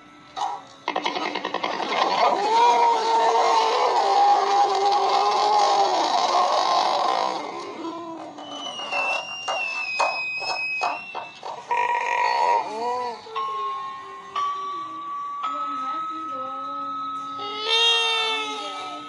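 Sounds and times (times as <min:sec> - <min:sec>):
high held tone: 0:08.4 - 0:19.0
cartoon music: 0:17.4 - 0:19.0.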